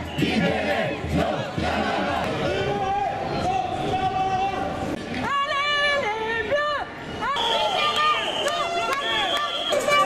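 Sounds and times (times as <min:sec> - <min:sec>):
crowd shouting: 0:00.0 - 0:10.0.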